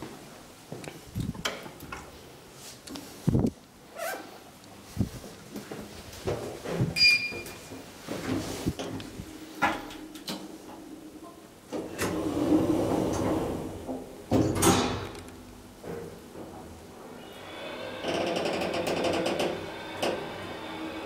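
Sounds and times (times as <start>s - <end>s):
elevator beep: 7.0s - 7.6s
elevator door running: 8.8s - 15.3s, 16.3s - 21.0s.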